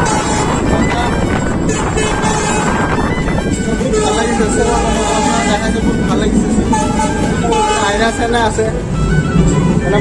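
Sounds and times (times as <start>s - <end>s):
background music: 0.0s - 10.0s
train rumble: 0.0s - 10.0s.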